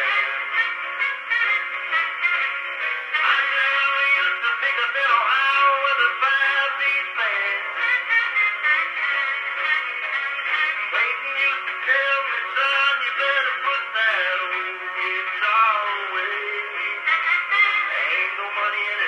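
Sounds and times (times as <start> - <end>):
country song on phonograph: 0.0 - 19.0.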